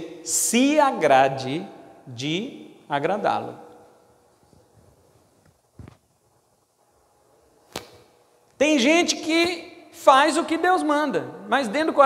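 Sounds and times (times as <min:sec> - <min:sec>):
sharp click: 0:07.7 - 0:08.1.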